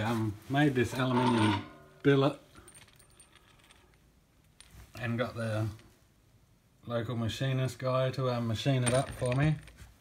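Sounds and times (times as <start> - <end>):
small metal parts clicking: 2.6 - 4.7.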